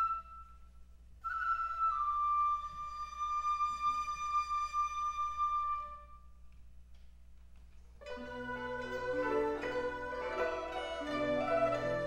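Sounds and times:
bamboo flute playing: 0.0s - 6.4s, 8.0s - 12.0s.

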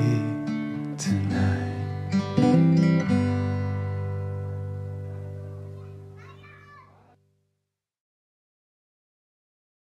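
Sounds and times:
acoustic guitar chord ringing: 0.0s - 6.2s
child's voice: 5.4s - 7.2s.

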